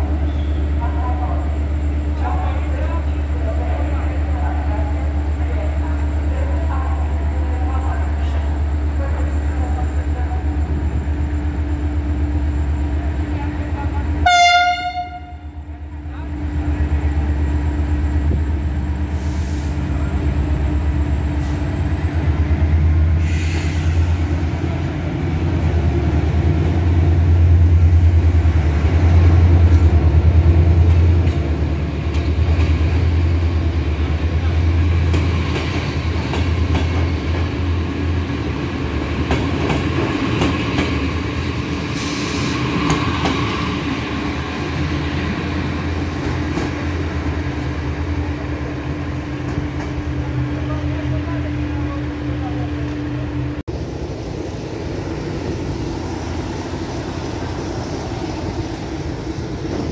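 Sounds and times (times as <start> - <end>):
train rumbling: 0.0 - 59.9.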